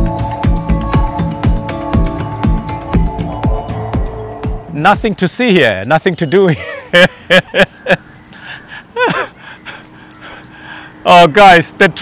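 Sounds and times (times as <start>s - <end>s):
man laughing: 6.4s - 9.9s
soft breathing: 8.3s - 11.0s.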